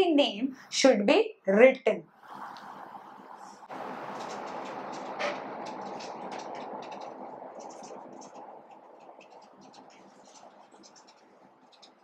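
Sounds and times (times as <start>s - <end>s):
marker pen scratching: 4.6s - 12.0s.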